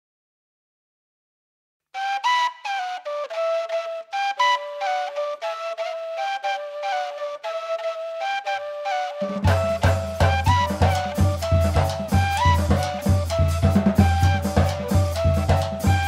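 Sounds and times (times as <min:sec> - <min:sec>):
solo flute melody: 0:02.0 - 0:16.0.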